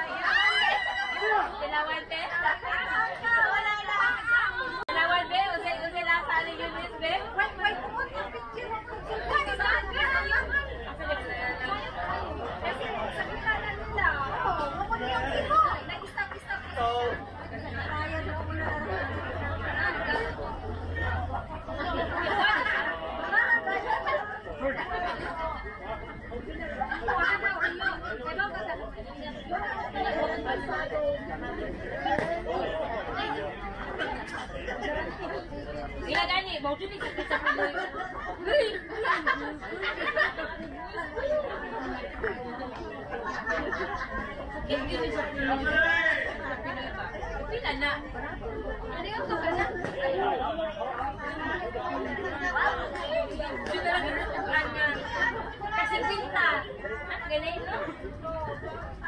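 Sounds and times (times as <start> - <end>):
indistinct chatter of voices: 0.0 - 59.0.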